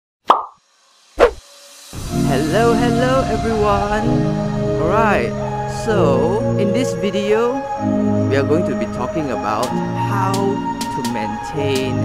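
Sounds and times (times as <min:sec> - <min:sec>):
plop with falling tail: 0:00.3 - 0:00.6
music: 0:01.4 - 0:12.0
deep heavy hit: 0:02.0 - 0:06.6.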